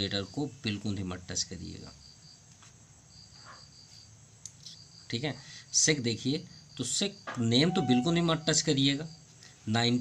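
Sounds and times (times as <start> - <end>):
cricket chirping: 0.0 - 10.0.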